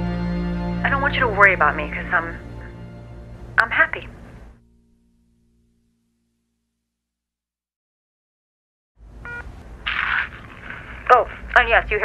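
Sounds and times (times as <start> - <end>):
rustling noise: 9.1 - 11.8.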